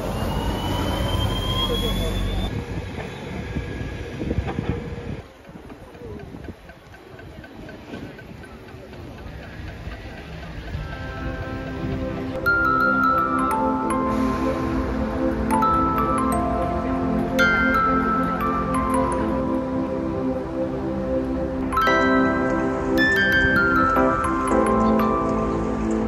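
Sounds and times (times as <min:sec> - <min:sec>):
bus pulling away: 0:00.0 - 0:05.6, 0:09.0 - 0:26.0
passers-by chatter: 0:00.0 - 0:26.0
street traffic: 0:00.0 - 0:26.0
music: 0:10.6 - 0:26.0.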